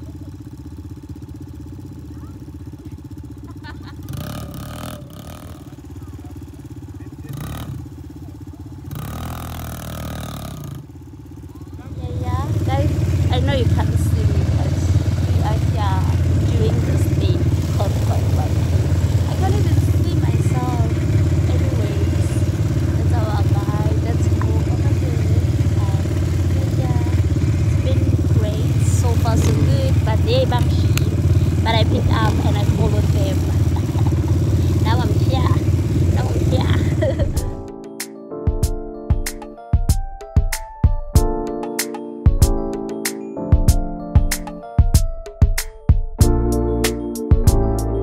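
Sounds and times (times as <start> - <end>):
quad bike engine running: 0.0 - 37.7
people talking: 2.1 - 3.1, 5.0 - 8.6, 11.5 - 37.5.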